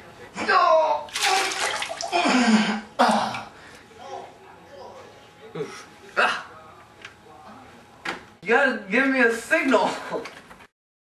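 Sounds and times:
toilet flushing: 1.1s - 2.4s.

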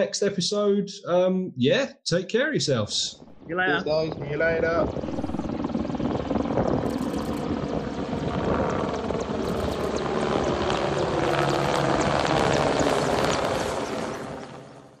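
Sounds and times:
aircraft engine noise: 3.1s - 14.8s.

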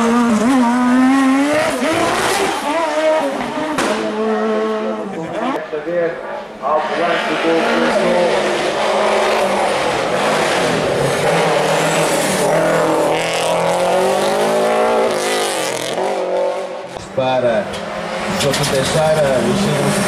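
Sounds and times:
car engine at high revs: 0.0s - 20.0s.

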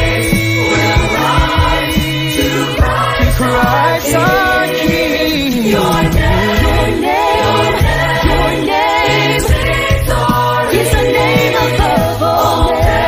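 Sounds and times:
sustained low bass notes: 0.0s - 10.6s
choir singing in harmony: 0.0s - 13.0s.

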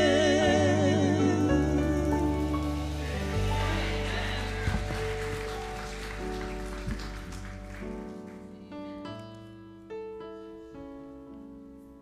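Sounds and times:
church keyboard sustained chords: 0.0s - 11.7s.

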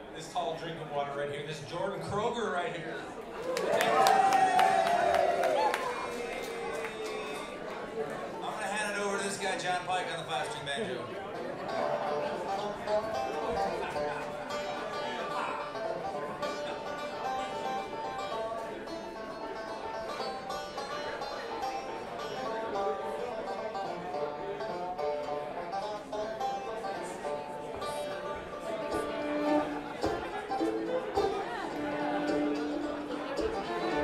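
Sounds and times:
bluegrass band playing: 0.0s - 4.1s, 5.8s - 34.0s
banjo picked runs: 7.2s - 34.0s
bowed fiddle notes: 11.3s - 34.0s.

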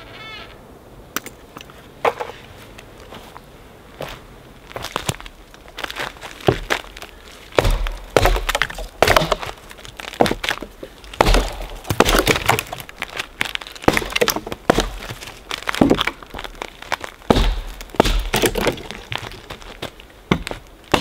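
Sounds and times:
hatchet chopping branches: 7.6s - 9.6s, 11.2s - 12.8s, 13.8s - 15.1s, 17.3s - 19.0s, 20.3s - 21.0s.

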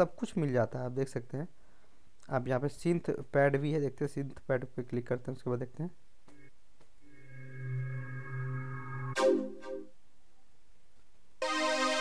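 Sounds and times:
synth pad held chord: 7.0s - 9.9s, 11.4s - 12.0s.

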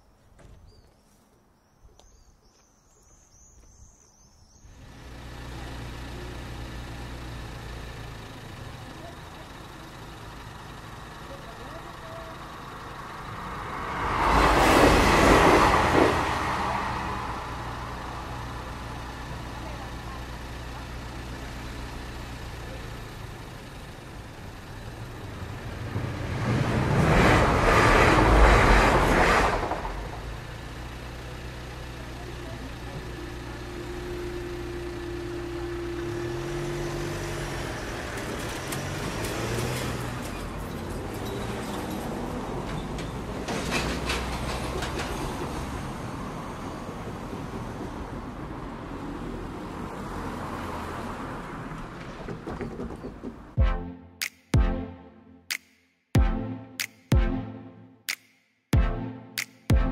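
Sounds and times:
car engines idling: 4.5s - 53.6s
train rushing past: 13.4s - 17.8s, 25.7s - 30.4s.

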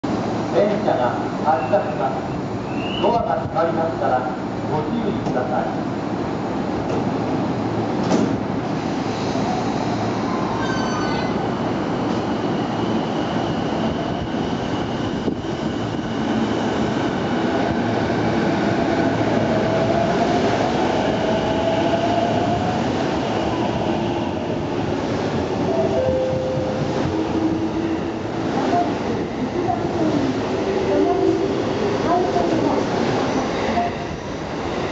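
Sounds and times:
train doors shutting with a thud: 6.8s - 7.2s, 8.0s - 9.7s, 25.7s - 27.7s.

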